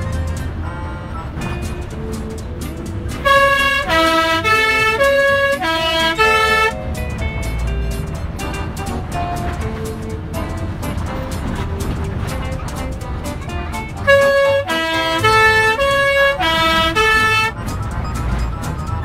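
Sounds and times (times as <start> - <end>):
three-tone bus horn: 0.0 - 7.0, 8.6 - 19.0
bus engine rumbling: 0.0 - 19.0.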